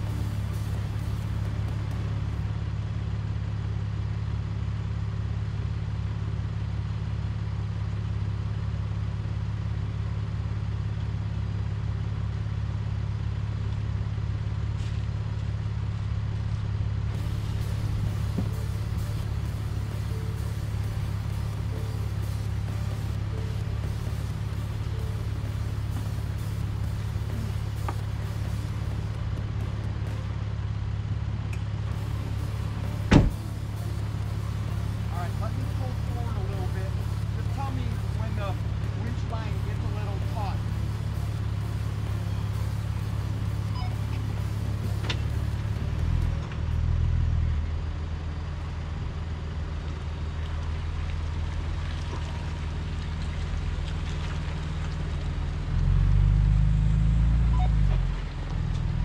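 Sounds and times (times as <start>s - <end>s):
engine revving: 0.0s - 2.5s, 17.1s - 30.6s, 31.5s - 46.8s, 55.6s - 59.0s
engine idling: 0.0s - 59.0s
car door slamming: 33.0s - 33.6s.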